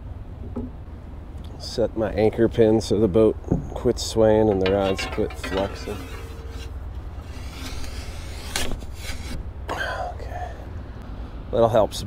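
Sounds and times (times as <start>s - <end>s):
metal pin scraping: 4.4s - 9.4s.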